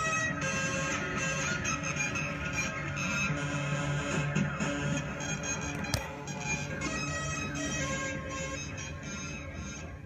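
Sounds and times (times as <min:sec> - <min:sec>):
droning synthesizer tones: 0:00.0 - 0:10.0
wavering synth lead line: 0:00.0 - 0:10.0.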